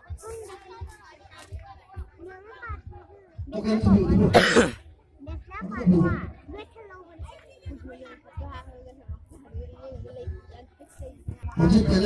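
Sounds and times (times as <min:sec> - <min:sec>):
person coughing: 0:04.3 - 0:04.8.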